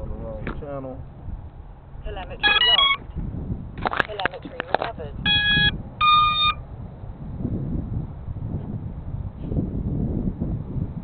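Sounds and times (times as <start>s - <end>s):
wind rumble on microphone: 0.0s - 11.0s
short electronic beep: 2.4s - 3.0s, 5.3s - 6.6s.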